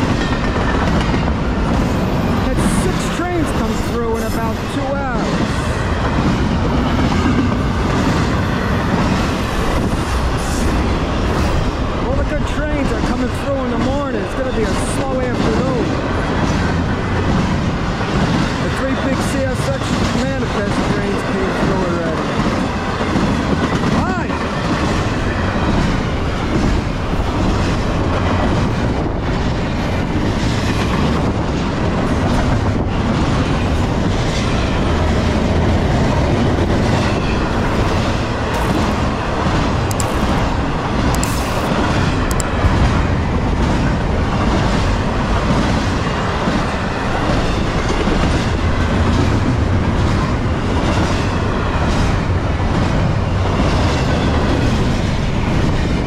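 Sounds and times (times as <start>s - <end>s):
freight train wheels rumbling on rails: 0.0s - 56.0s.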